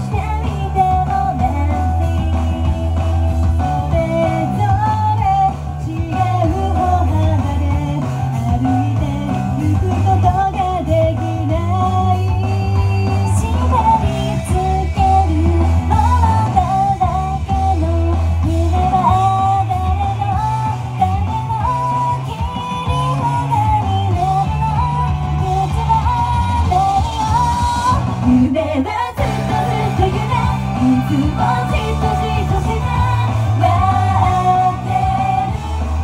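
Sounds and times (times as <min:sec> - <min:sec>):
amplified rock backing music: 0:00.0 - 0:36.0
woman singing pop song: 0:00.0 - 0:36.0.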